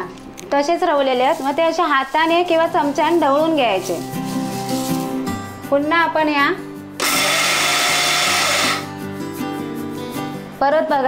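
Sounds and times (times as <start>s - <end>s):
background music: 0.0s - 11.0s
mixer grinder pulsing: 7.0s - 8.9s.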